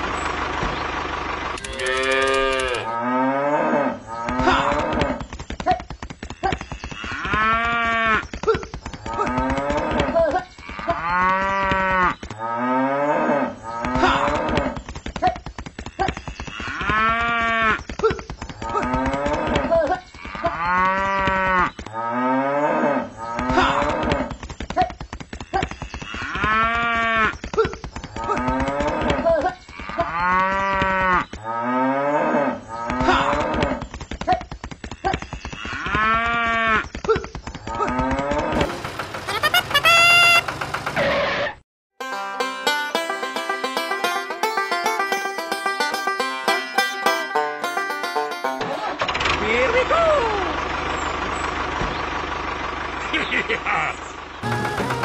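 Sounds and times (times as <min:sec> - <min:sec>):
cow mooing: 0:01.6 - 0:05.0, 0:10.6 - 0:14.5, 0:20.2 - 0:24.1.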